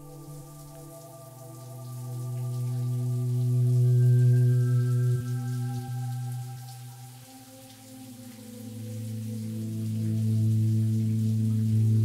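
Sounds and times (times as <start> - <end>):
ambient drone of held tones: 0.0 - 12.0.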